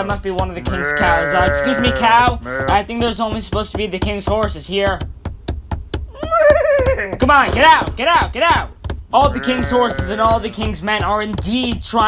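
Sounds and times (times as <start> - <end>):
cartoon cow mooing: 0.6 - 2.8, 9.3 - 10.5.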